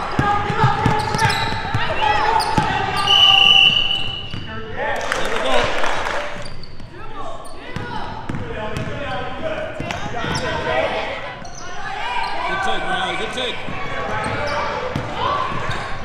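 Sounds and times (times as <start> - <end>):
basketball bouncing: 0.0 - 3.0, 7.7 - 9.1, 13.6 - 15.9
people shouting in a hall: 0.0 - 4.2, 10.0 - 16.0
sneakers squeaking on hardwood: 0.1 - 4.6, 6.4 - 9.2, 9.8 - 12.9, 13.6 - 16.0
shrill whistle: 2.4 - 4.5.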